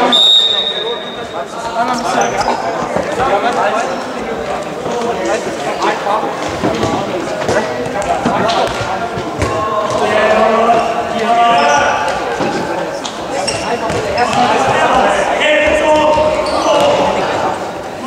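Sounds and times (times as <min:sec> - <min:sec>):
players calling out: 0:00.0 - 0:18.0
ball bouncing on hall floor: 0:06.4 - 0:10.4, 0:11.7 - 0:15.0, 0:15.6 - 0:17.2.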